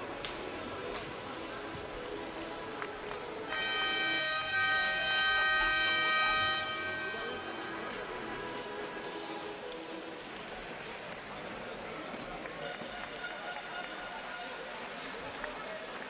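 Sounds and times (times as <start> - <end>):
crowd chatter: 0.0 - 16.0
game buzzer long tone: 3.5 - 8.8.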